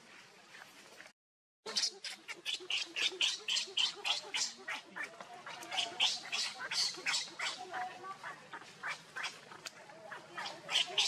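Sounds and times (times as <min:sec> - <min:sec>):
monkey infant squealing: 0:05.8 - 0:07.6.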